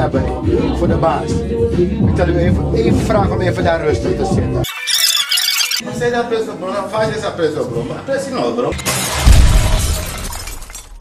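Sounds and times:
glass shattering: 4.7 - 5.8, 8.8 - 11.0
debris clattering: 8.8 - 11.0.

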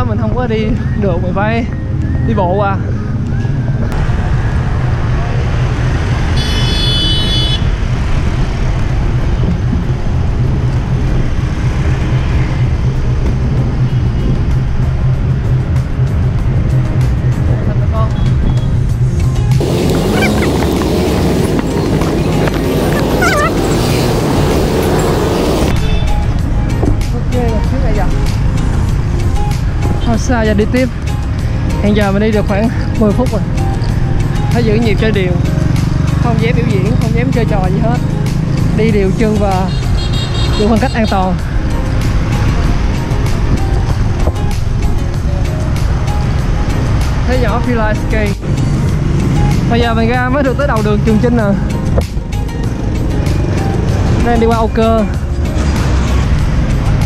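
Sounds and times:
street traffic rumble: 0.0 - 57.0
music with voices: 9.4 - 57.0.

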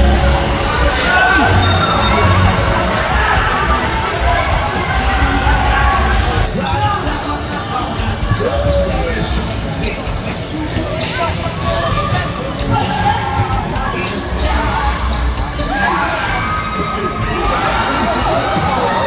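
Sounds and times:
crowd chatter and shouts: 0.0 - 19.0.

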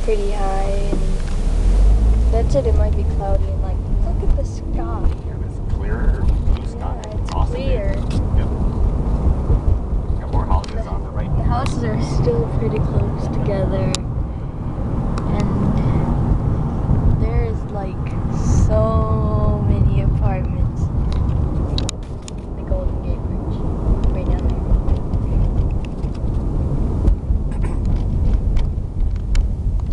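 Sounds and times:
car road noise rumble: 0.0 - 29.9
muffled voice: 10.2 - 12.0.

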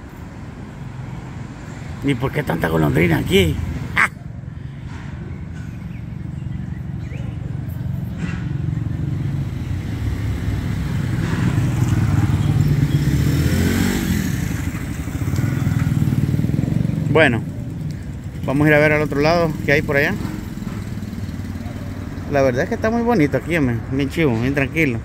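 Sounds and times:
vehicle engine passing: 7.9 - 25.0.

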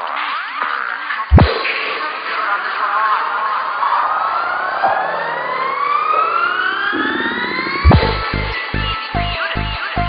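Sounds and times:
loud low hit: 1.3 - 1.6, 7.8 - 8.9
rising synth sweep: 5.1 - 9.2.

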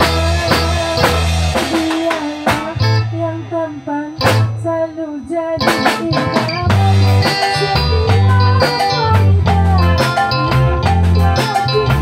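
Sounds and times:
drum kit hits: 0.0 - 5.0, 5.6 - 12.0
bass notes: 0.0 - 12.0
electric guitar melody: 0.0 - 12.0.

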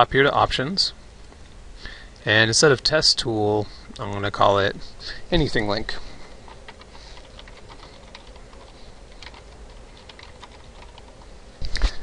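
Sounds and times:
typing on computer keyboard: 6.4 - 11.3.

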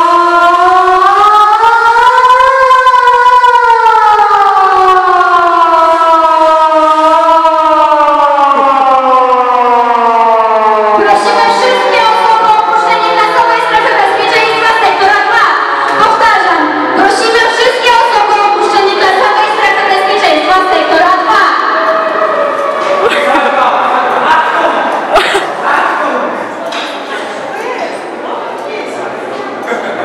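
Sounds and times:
siren wailing: 0.0 - 23.6
voices: 10.9 - 30.0.

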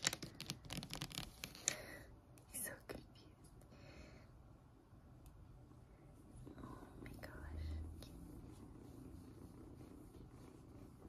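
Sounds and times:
kitten purring faintly: 5.8 - 11.0
hand stroking fur: 6.1 - 11.0.

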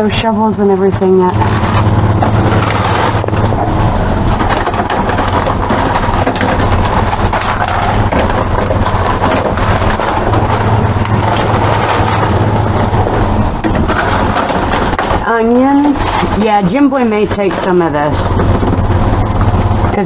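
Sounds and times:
low machine hum: 0.0 - 20.0
plastic packets crinkling: 1.3 - 20.0.

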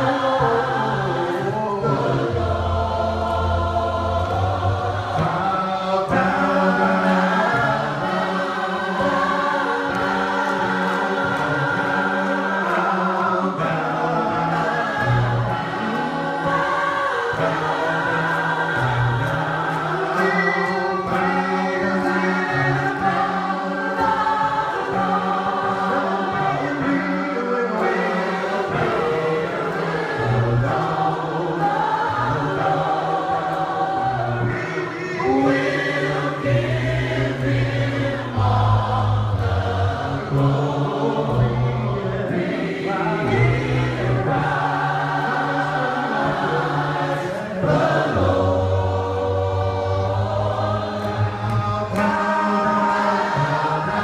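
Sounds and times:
choir singing: 0.0 - 54.0.

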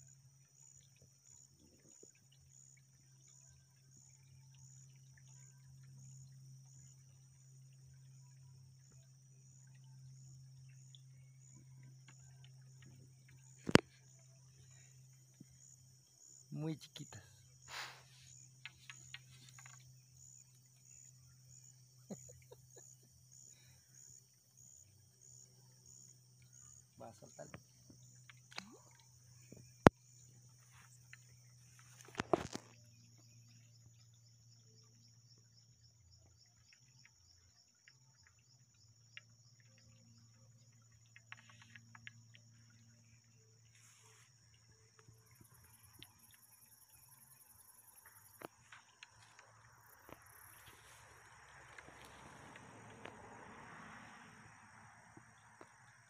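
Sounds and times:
insects chirping: 0.0 - 56.0.

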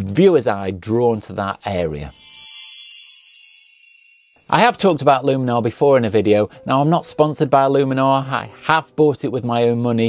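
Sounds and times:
thin high tones: 2.1 - 4.9.

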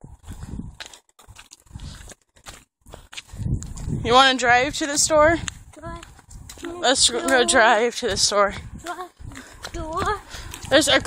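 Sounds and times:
wind buffeting microphone: 0.0 - 2.2, 2.8 - 11.0.

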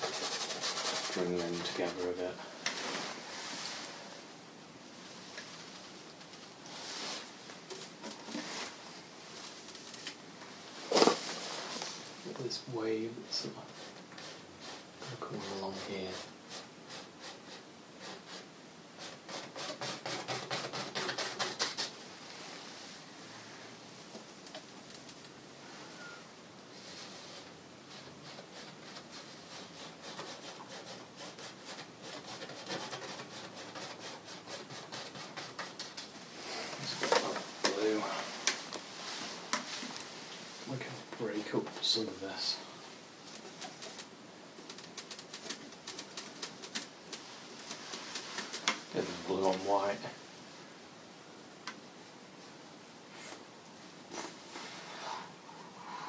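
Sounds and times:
paintbrush scrubbing on canvas: 0.0 - 2.3, 13.3 - 22.0, 26.8 - 36.7.

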